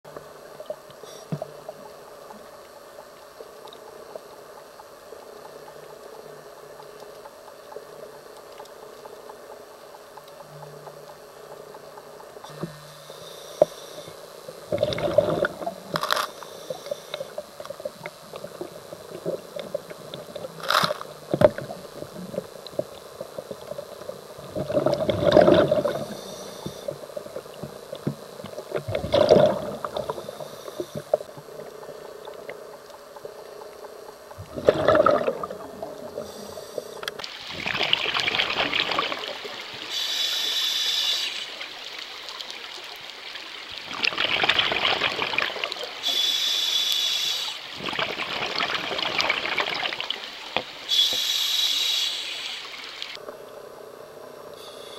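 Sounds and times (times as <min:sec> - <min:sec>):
exhaled bubbles rushing: 0:14.7 - 0:16.0, 0:24.4 - 0:26.2, 0:28.7 - 0:30.2, 0:34.4 - 0:36.2, 0:37.4 - 0:39.6, 0:43.8 - 0:45.8, 0:47.7 - 0:50.2
higher regulator hiss: 0:25.9 - 0:27.1, 0:30.0 - 0:31.2, 0:39.8 - 0:41.7, 0:46.0 - 0:47.7, 0:50.8 - 0:53.2.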